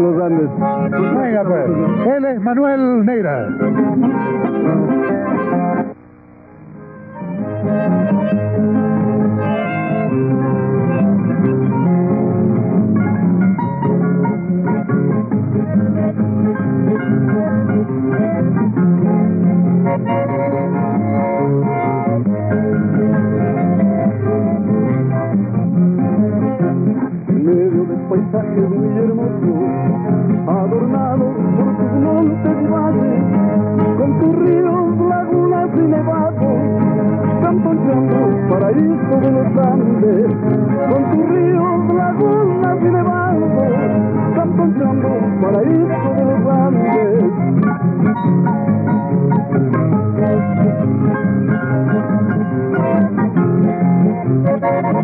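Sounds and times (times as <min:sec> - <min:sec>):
acoustic guitars playing: 0:00.0 - 0:55.0.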